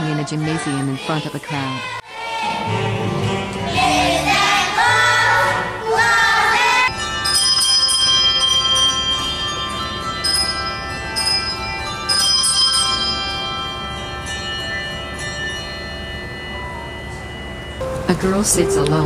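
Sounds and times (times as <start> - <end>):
handbells ringing a melody: 6.8 - 19.0.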